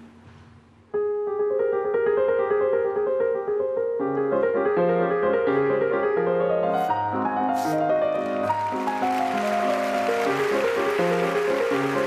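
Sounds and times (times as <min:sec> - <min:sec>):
grand piano playing: 0:00.9 - 0:12.0.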